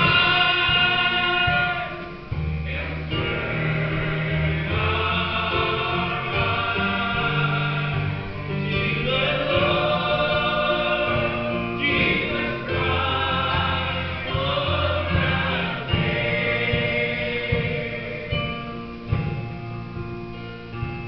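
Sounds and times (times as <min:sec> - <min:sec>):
man singing into microphone: 0:00.0 - 0:18.5
choir singing in harmony: 0:00.0 - 0:19.5
acoustic guitar: 0:00.0 - 0:21.0.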